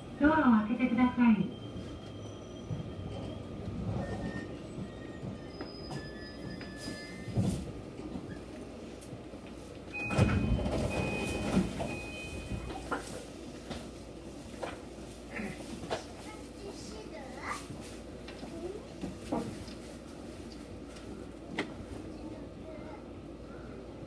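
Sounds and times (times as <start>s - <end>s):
train low rumble: 0.0s - 24.0s
train doors sliding open: 1.7s - 16.2s.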